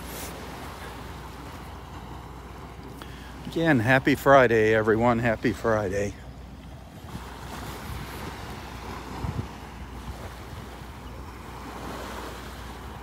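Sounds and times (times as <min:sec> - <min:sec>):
gentle waves washing on beach: 0:00.0 - 0:13.0
wind on microphone: 0:07.0 - 0:13.0.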